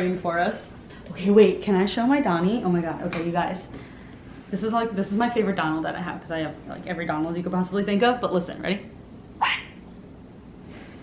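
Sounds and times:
toy duck voice squawk: 9.4s - 9.8s.

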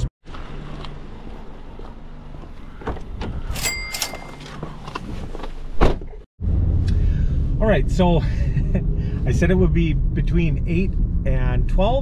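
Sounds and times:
loud thump: 5.8s - 6.2s.

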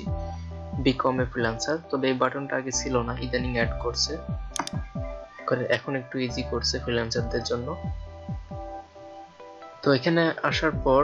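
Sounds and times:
computer mouse clicks: 4.5s - 4.8s.

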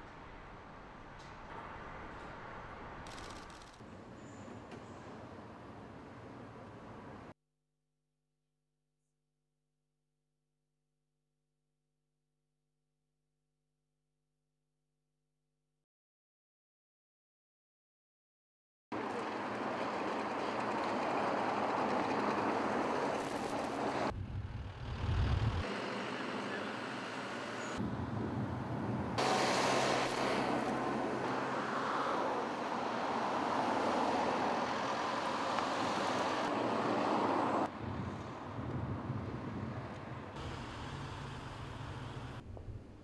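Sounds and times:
cars and trucks passing: 19.0s - 42.4s.

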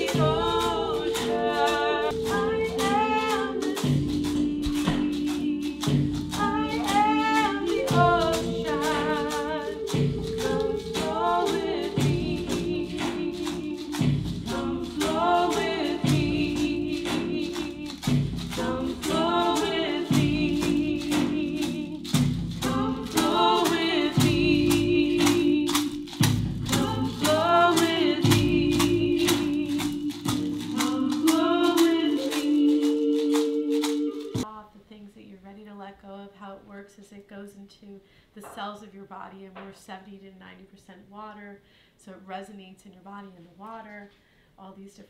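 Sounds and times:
percussion beat: 0.0s - 34.5s
voices chanting: 0.0s - 34.5s.

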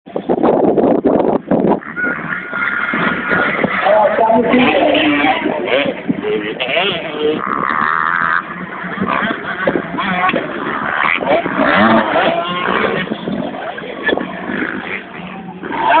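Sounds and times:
motocross bike engines revving: 0.1s - 16.0s.

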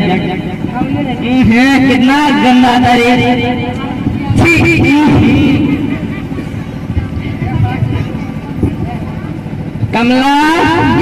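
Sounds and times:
faint voices: 0.0s - 11.0s
steady low rumble: 0.0s - 11.0s.

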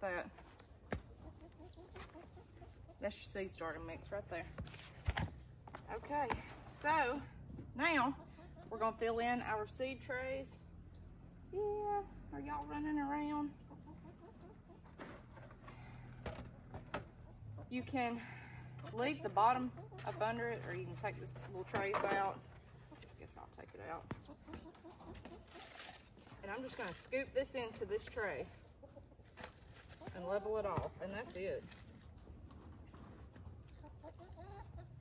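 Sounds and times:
hens clucking: 0.4s - 4.9s, 7.8s - 9.0s, 13.4s - 18.1s, 18.8s - 35.0s.

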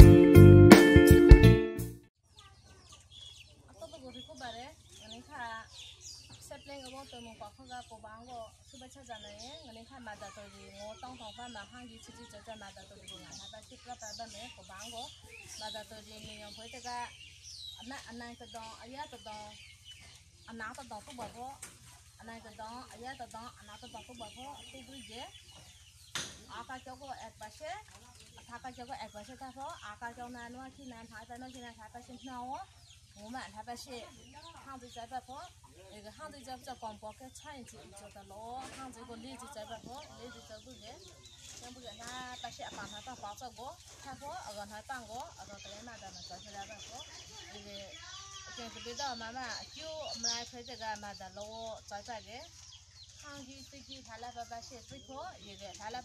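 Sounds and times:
bird chirps: 2.2s - 56.0s
chickens clucking: 2.3s - 56.0s
women talking quietly: 2.4s - 56.0s.

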